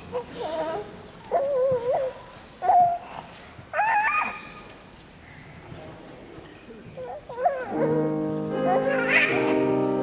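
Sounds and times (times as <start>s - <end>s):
child whining: 0.2s - 4.7s, 7.0s - 9.7s.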